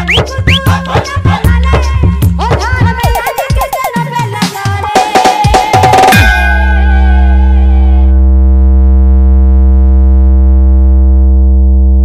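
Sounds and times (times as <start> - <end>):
synthesizer bass note: 3.0 - 4.0, 6.2 - 12.0.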